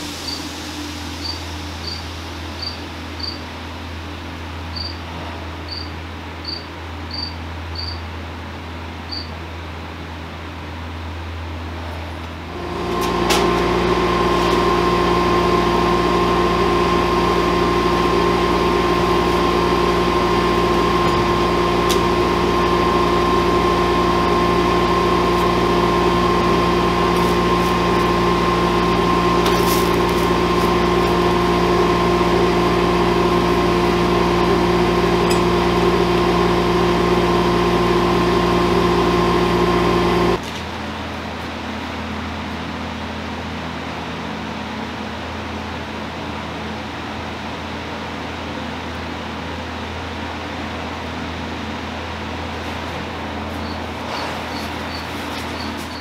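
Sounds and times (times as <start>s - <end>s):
electric motor humming: 12.5s - 40.4s.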